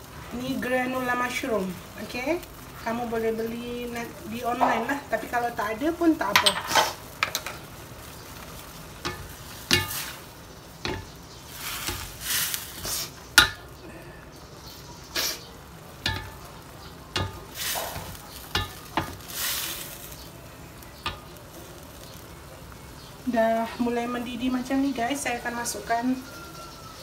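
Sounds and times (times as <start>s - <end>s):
sauce sizzling: 0.0s - 27.0s
spatula knocking against wok: 9.0s - 10.1s, 10.8s - 11.2s, 13.4s - 13.7s, 16.0s - 19.3s.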